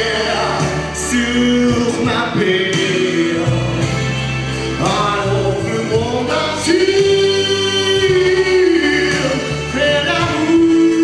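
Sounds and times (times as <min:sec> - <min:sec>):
instrumental accompaniment: 0:00.0 - 0:11.0
man singing pop ballad: 0:00.0 - 0:11.0.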